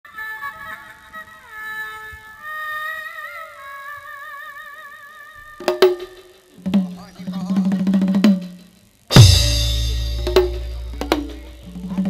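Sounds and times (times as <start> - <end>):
instrumental melody with sliding notes: 5.6 - 12.0.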